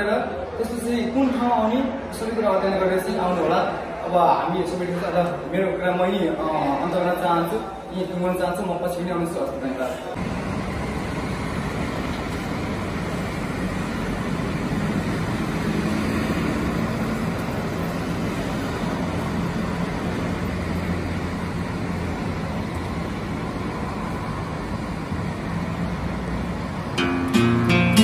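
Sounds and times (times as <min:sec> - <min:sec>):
road traffic hum: 0:00.0 - 0:28.0.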